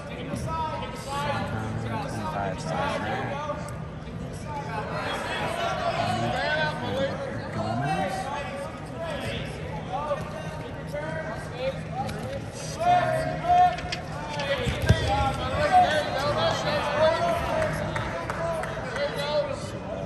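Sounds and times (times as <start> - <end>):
people calling out and talking: 0.0 - 20.0.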